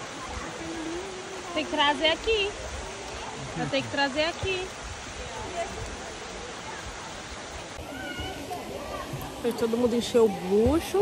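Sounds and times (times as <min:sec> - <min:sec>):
faint distant voices: 0:00.0 - 0:11.0
flowing water rushing: 0:00.0 - 0:11.0.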